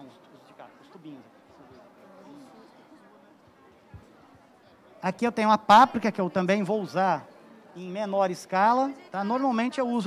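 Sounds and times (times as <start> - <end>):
faint background voices: 0.0 - 10.0.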